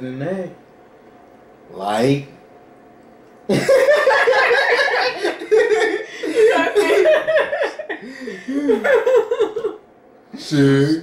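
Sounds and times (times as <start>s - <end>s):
man and woman laughing: 3.5s - 9.8s.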